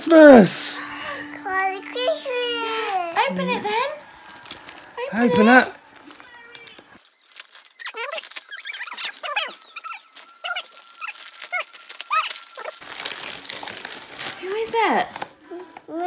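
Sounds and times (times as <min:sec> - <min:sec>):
wrapping paper crinkling and tearing: 0:01.5 - 0:15.5.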